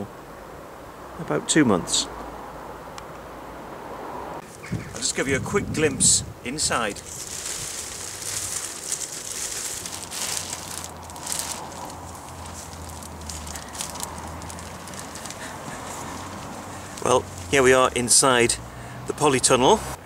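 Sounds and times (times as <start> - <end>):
plastic sheeting rustling and crinkling: 6.6 - 17.8.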